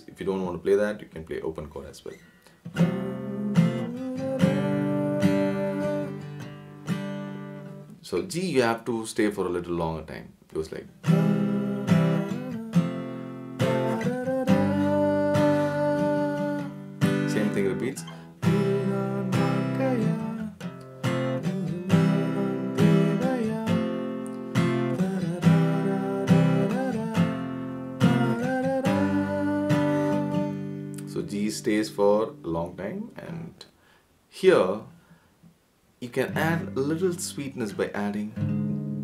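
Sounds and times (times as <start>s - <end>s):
acoustic guitar strumming chords: 2.2s - 8.1s, 10.8s - 33.5s, 36.0s - 39.0s.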